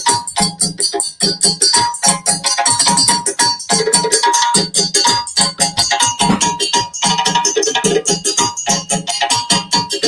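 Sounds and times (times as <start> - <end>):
djembes played by hand: 0.0 - 10.0
stick-beaten barrel drum: 0.0 - 10.0.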